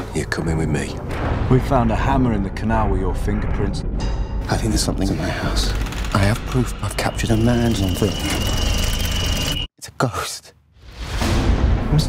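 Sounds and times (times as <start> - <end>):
high-pitched squeal: 6.1 - 9.7.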